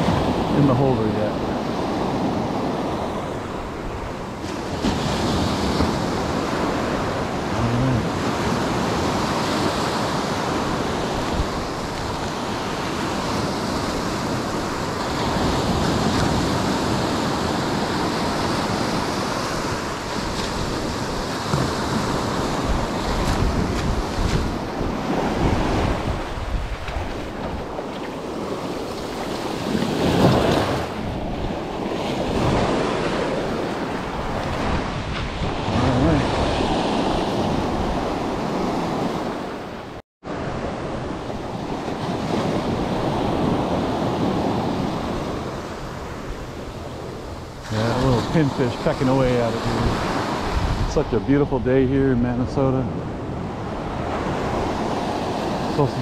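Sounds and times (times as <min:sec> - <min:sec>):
wind buffeting microphone: 0:00.0 - 0:39.7, 0:40.4 - 0:56.0
ocean surf breaking: 0:00.0 - 0:56.0.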